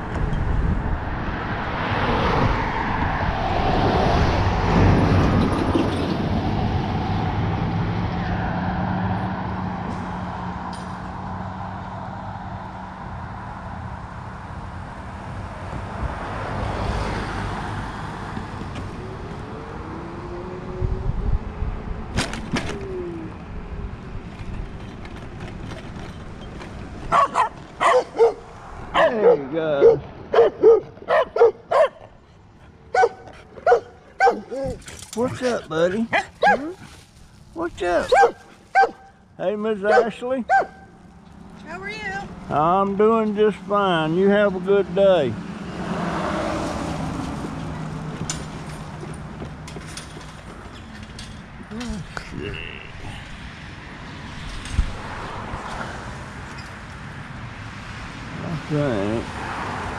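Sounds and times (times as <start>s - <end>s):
vehicle passing: 0.0s - 59.9s
dogs barking: 27.1s - 32.2s, 32.9s - 36.8s, 38.0s - 39.1s, 39.8s - 41.0s.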